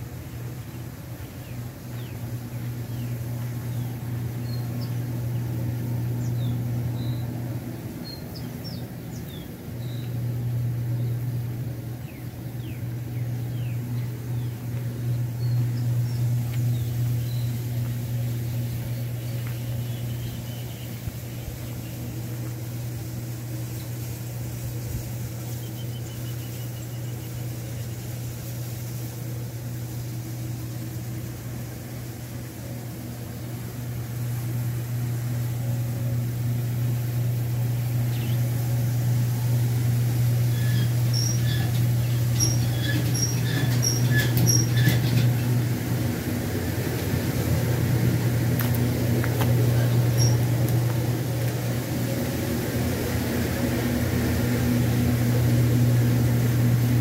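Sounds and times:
diesel truck engine idling: 34.2s - 57.0s.

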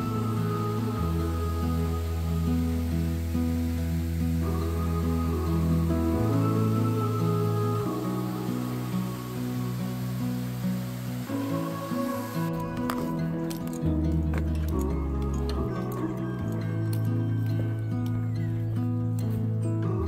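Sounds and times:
slow sustained instrumental chords: 0.0s - 20.0s.

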